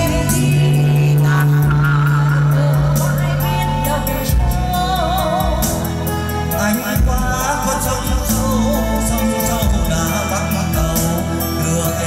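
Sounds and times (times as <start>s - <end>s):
karaoke backing music over pa: 0.0s - 12.0s.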